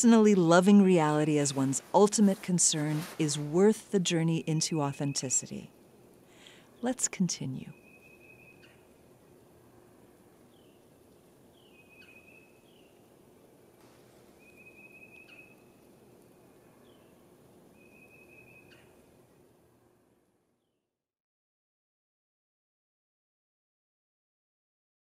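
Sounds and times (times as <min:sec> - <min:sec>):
background hiss: 0:00.0 - 0:20.6
whistled bird call: 0:14.4 - 0:15.6.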